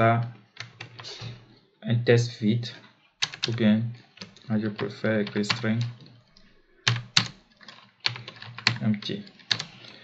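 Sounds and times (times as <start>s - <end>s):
keyboard keys clicking: 3.2s - 3.6s.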